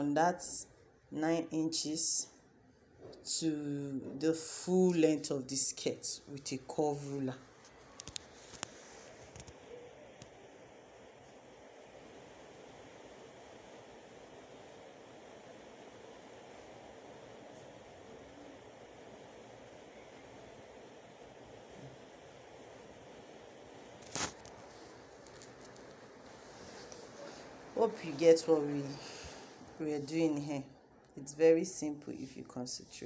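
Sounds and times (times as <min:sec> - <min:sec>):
faint room hiss: 0:00.0 - 0:33.0
plastic ruler rustling on fabric: 0:24.0 - 0:27.6.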